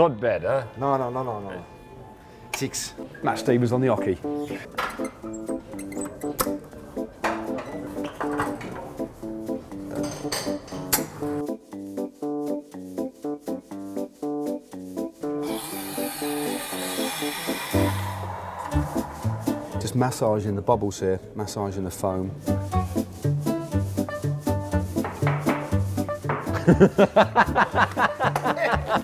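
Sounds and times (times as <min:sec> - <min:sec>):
music with plucked notes: 0:03.9 - 0:15.4
steam wand hissing: 0:15.4 - 0:19.9.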